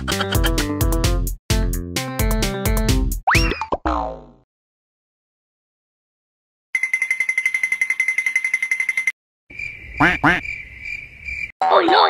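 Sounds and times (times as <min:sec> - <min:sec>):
background music: 0:00.0 - 0:03.2
springy cartoon boing: 0:03.3 - 0:04.4.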